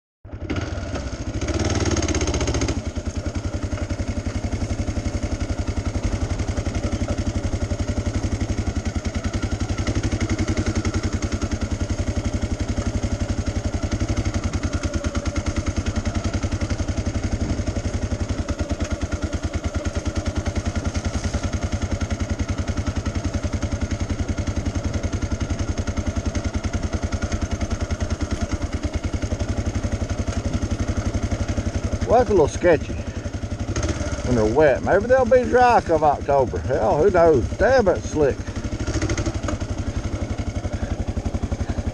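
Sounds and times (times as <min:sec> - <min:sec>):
motorcycle engine running: 0:00.3 - 0:41.9.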